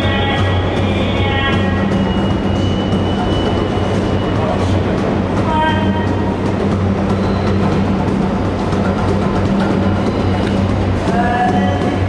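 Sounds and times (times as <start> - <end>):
faint busker instrument notes: 0.0 - 12.0
low hum: 0.0 - 12.0
subway train rumble: 0.0 - 12.0.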